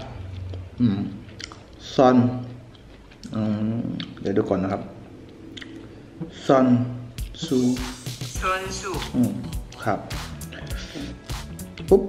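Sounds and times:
man chewing food: 0.0 - 6.3, 10.4 - 11.9.

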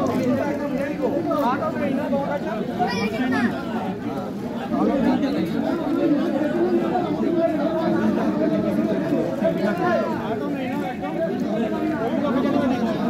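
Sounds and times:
overlapping chatter of people: 0.0 - 13.0.

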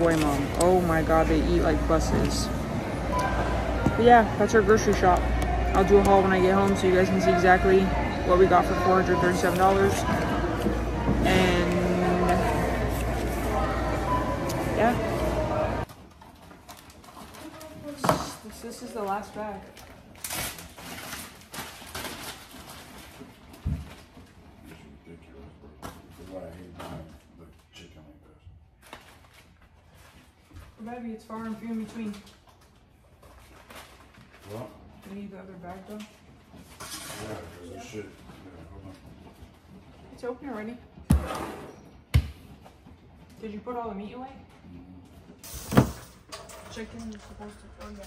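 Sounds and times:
murmur of voices: 0.0 - 15.9
plastic bags rustling: 14.8 - 24.2.

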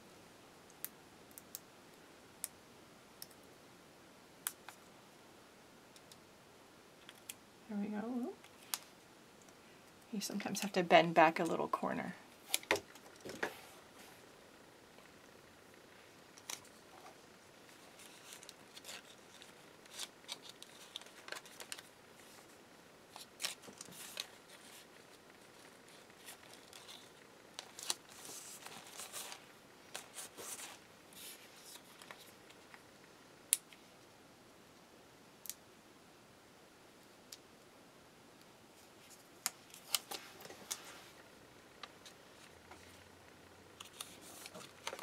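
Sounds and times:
sticker paper rustling: 17.7 - 32.7.

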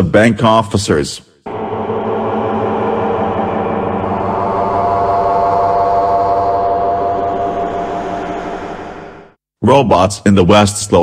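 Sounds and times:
sustained droning tone: 1.5 - 9.4.

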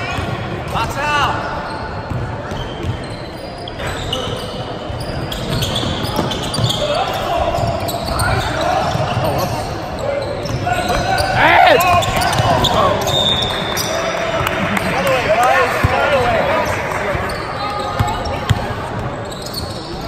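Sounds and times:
shouts and chatter: 6.1 - 19.0.

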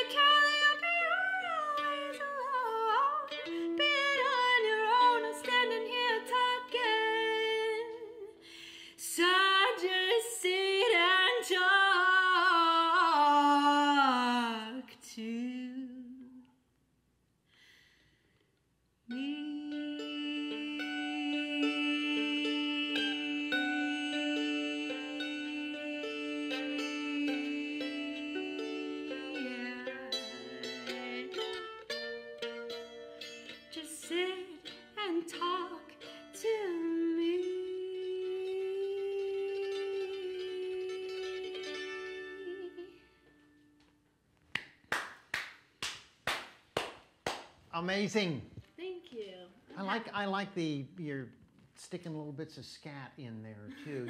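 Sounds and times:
picked mandolin: 0.0 - 8.4, 9.0 - 15.5, 19.1 - 44.1
woman singing: 0.0 - 16.6, 19.1 - 32.0, 33.5 - 43.4
hand clapping: 44.5 - 47.6.

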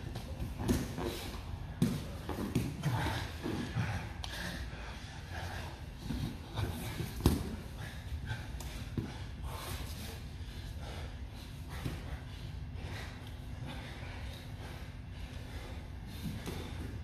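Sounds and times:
heavy breathing and grunts: 0.0 - 17.0.

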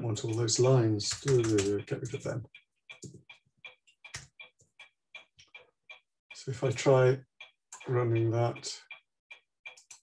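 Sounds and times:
keyboard keys tapping: 0.3 - 2.4.

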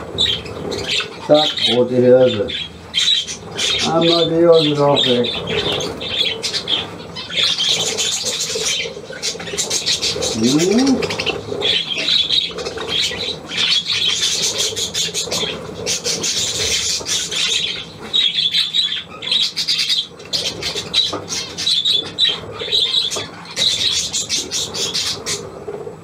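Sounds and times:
budgerigars chattering and squawking: 0.0 - 25.6.

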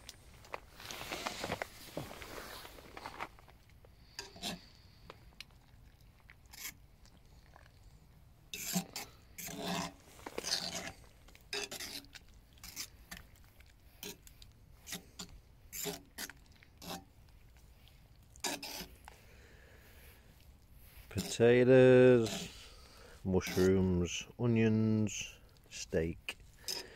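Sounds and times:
fork scraping a metal pot: 4.2 - 4.6, 8.5 - 13.0, 14.8 - 17.1, 18.4 - 19.0, 21.1 - 21.5, 22.1 - 22.8, 23.4 - 24.0, 26.6 - 26.9.

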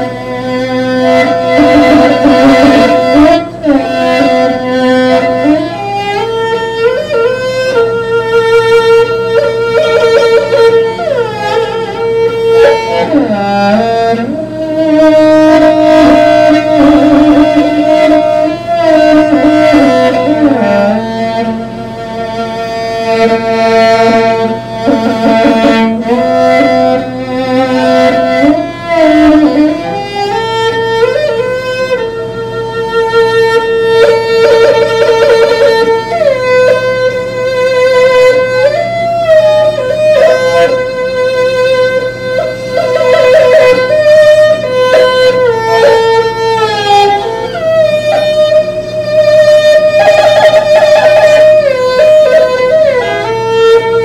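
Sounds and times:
bowed fiddle melody: 0.0 - 54.0.

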